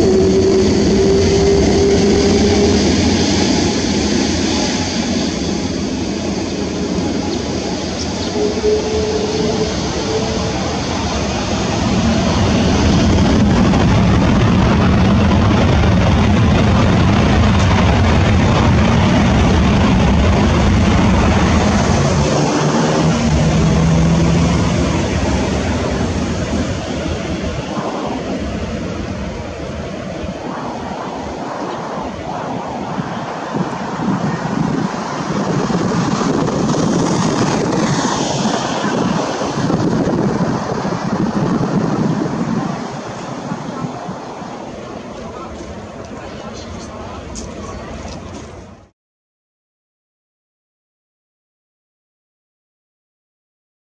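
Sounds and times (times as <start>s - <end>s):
jet engines roaring: 0.0s - 48.9s.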